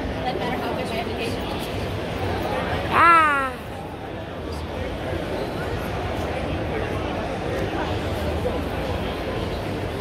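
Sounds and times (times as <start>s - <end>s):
crowd babble: 0.0s - 10.0s.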